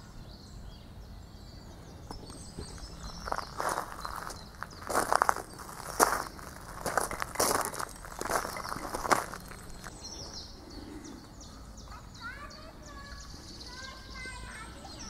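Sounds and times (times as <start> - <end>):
faint bird chirps: 0.0 - 15.0
footsteps on gravelly path: 2.1 - 10.5.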